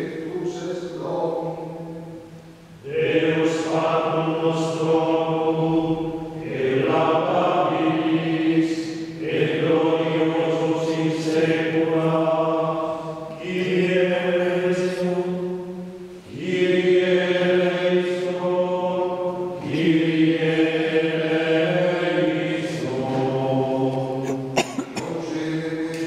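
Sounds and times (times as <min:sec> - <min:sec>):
voices chanting: 0:02.8 - 0:15.4, 0:16.3 - 0:26.0.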